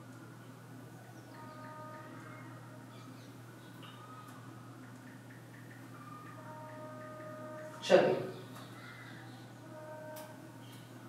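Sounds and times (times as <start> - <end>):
faint music: 0.0 - 11.0
steady low hum: 0.0 - 11.0.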